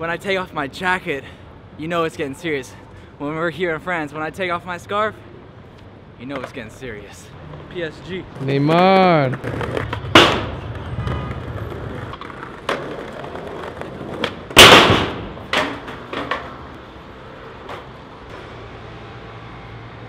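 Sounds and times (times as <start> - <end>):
skateboard wheels rolling on stone: 8.4 - 16.7
skateboard clack: 9.2 - 16.6
skateboard clattering: 9.2 - 16.6
skateboard crashing on metal: 9.4 - 10.7, 12.2 - 16.6.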